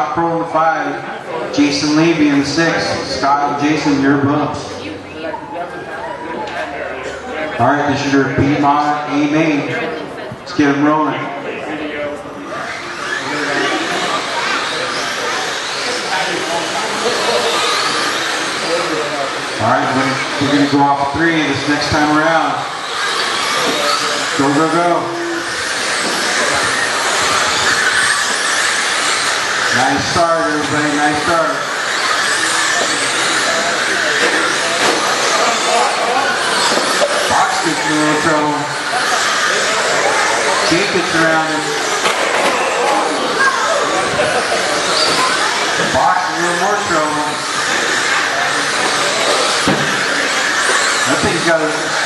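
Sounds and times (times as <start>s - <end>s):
race car motors whirring: 0.0s - 52.0s
voices in background: 0.0s - 52.0s.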